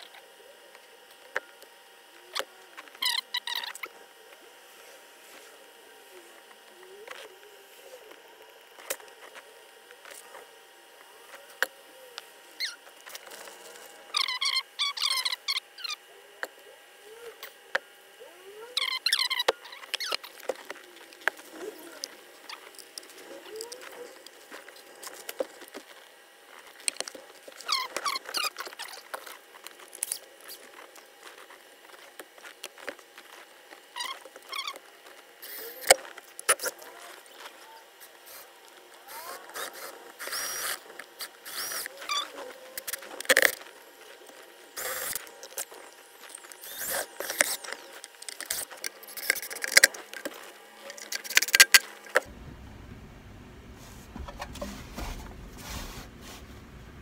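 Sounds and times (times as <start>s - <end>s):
cordless drill bursts: 46.6s - 47.6s.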